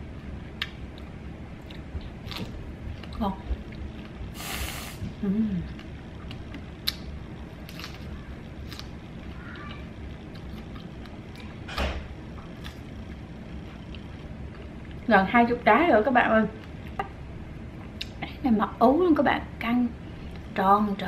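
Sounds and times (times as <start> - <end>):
quiet chewing: 0.6 - 11.7, 12.4 - 15.1.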